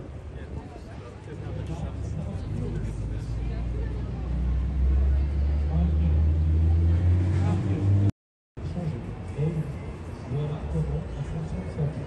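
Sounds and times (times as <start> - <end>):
passers-by talking faintly: 0.0 - 12.0
street noise: 0.0 - 12.0
vehicle engine rumbling: 0.0 - 12.0.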